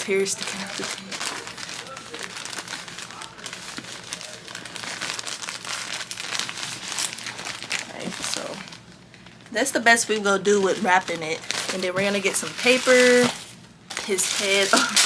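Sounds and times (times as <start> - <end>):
plastic mailer bag crinkling: 0.0 - 15.0.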